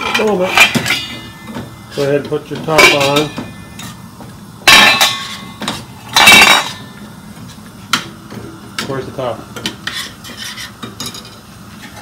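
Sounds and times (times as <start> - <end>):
metal pot clanging: 0.0 - 4.0, 4.6 - 7.0.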